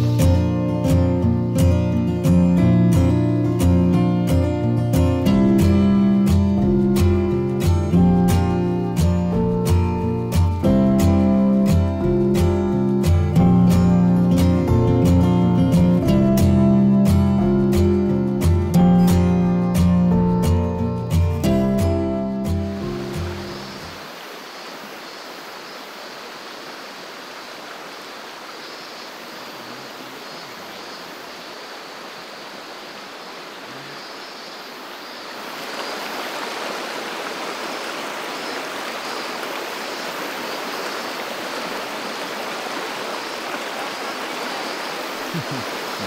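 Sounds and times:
acoustic guitar music: 0:00.0 - 0:24.0
stream rushing over rocks: 0:22.5 - 0:46.0.

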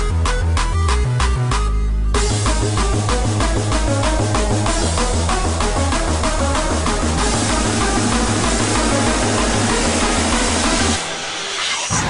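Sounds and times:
electronic dance music: 0:00.0 - 0:12.0
rush of hiss-like noise: 0:07.1 - 0:12.0.

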